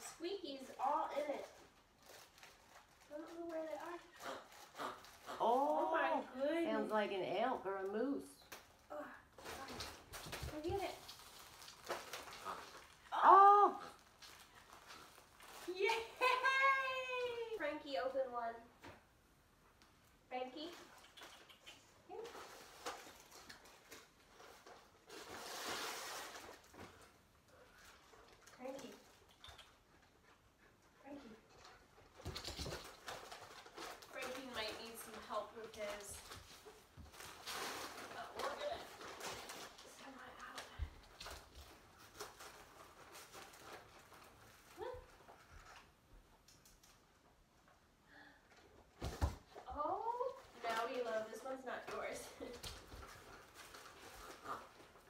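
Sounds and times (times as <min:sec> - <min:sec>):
paper rustling and tearing: 0:09.4 - 0:13.0, 0:22.2 - 0:27.1, 0:32.1 - 0:45.9.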